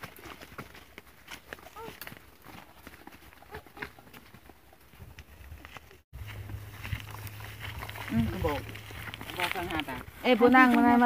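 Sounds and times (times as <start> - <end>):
footsteps crunching dry leaves: 5.2 - 11.0.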